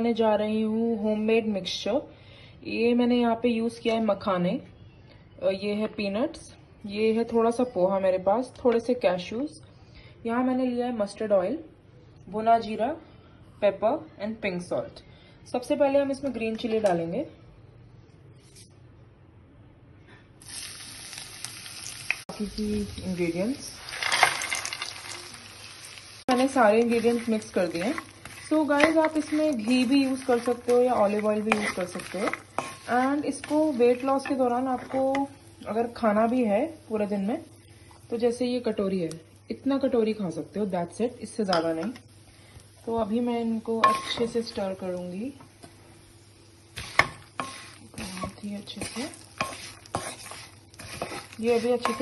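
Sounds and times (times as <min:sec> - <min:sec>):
oil sizzling in frying pan: 0:20.4 - 0:38.1, 0:42.6 - 0:52.0
nuts rattling into pan: 0:23.8 - 0:25.3
wooden spatula scraping a wok: 0:26.3 - 0:35.2, 0:46.8 - 0:52.0.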